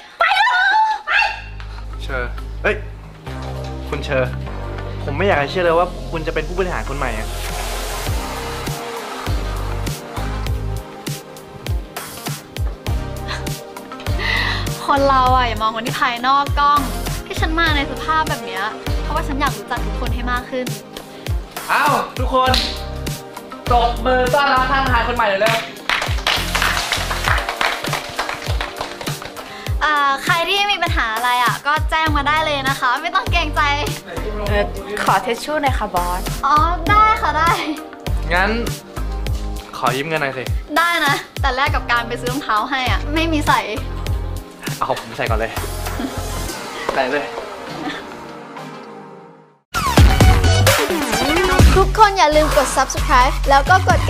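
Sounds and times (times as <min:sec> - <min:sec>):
background music with bass beat: 0:01.5 - 0:48.7, 0:49.7 - 0:54.0
people applauding: 0:25.5 - 0:29.8.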